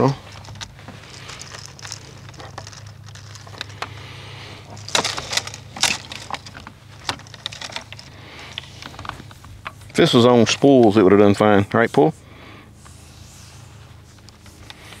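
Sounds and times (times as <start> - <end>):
cables scraping and rattling: 0.0 - 12.2
steady low hum: 0.0 - 15.0.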